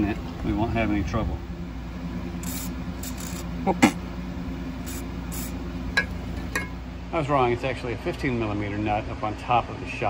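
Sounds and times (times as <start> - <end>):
aerosol can spraying: 2.4 - 4.0, 4.8 - 5.6.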